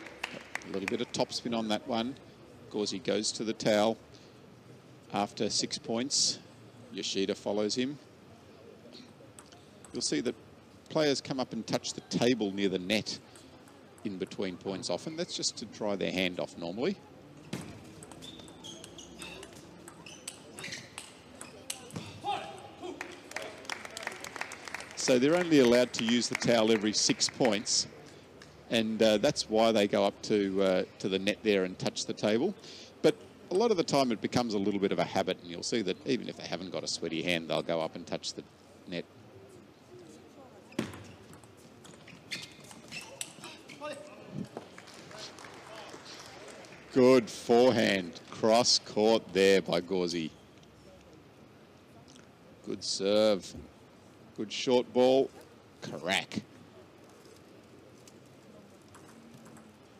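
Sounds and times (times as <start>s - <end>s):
murmur of crowd voices: 0.0s - 37.0s
sharp ball taps: 17.5s - 22.0s
short high squeaks: 18.1s - 21.8s, 42.0s - 44.0s.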